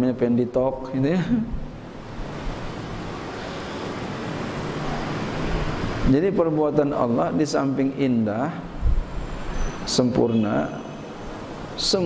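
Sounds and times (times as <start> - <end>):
broad rushing noise: 1.5 - 7.4.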